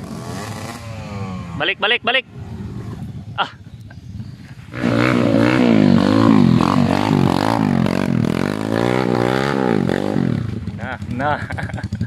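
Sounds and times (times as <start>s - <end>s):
dirt bike engine revving: 0.0s - 3.4s, 4.6s - 12.0s.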